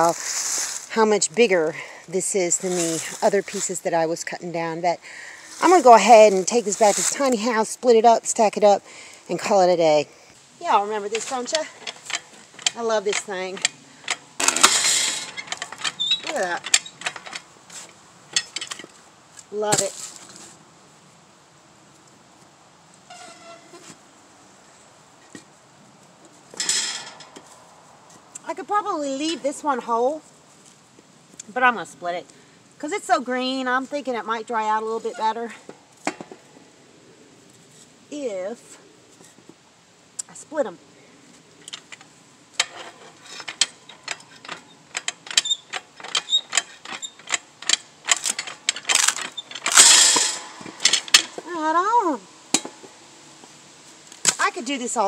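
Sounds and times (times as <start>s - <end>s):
wood scraping on metal: 10.7s - 20.6s, 23.1s - 24.0s, 26.5s - 28.2s, 41.7s - 55.0s
squeaky scrape: 11.0s - 18.6s, 23.1s - 24.0s, 42.6s - 51.6s
log splitter pump clicks: 41.6s - 51.5s, 52.5s - 53.0s
log cracking apart: 43.5s - 51.4s.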